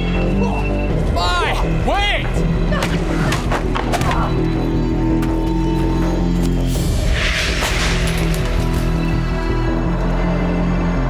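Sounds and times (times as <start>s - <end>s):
dramatic film score: 0.0s - 11.0s.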